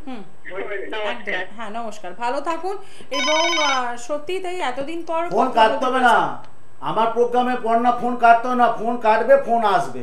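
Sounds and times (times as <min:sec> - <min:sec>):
man speaking into a microphone: 0:00.5 - 0:01.4
telephone ringing: 0:03.1 - 0:04.0.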